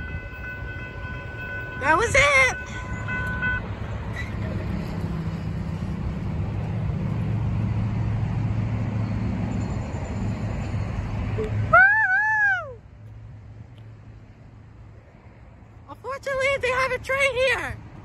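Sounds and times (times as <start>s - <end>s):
freight train rumbling: 0.0s - 12.3s
man's falsetto woo: 11.4s - 12.8s.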